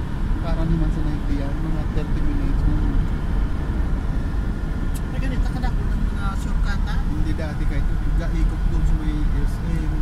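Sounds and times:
road and engine rumble: 0.0 - 10.0.

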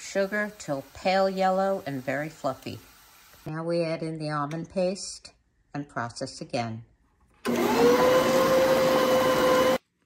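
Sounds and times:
stand mixer motor whine: 7.5 - 9.8.

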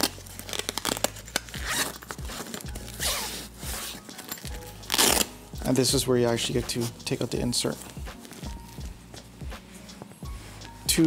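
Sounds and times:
bag zipper being pulled: 0.0 - 5.3
quiet background music: 0.0 - 11.0.

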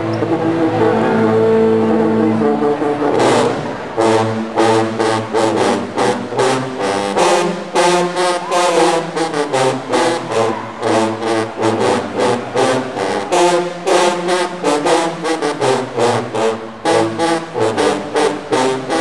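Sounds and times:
sousaphones playing brass riff: 0.0 - 19.0.

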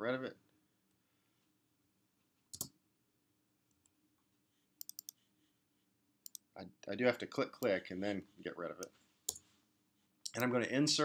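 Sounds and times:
computer mouse clicking: 2.5 - 2.8, 4.8 - 5.2, 6.2 - 6.5.

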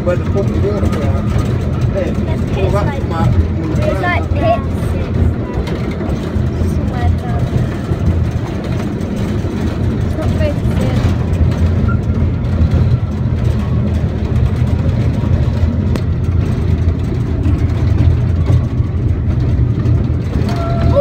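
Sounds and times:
train carriage rumbling on track: 0.0 - 21.0.

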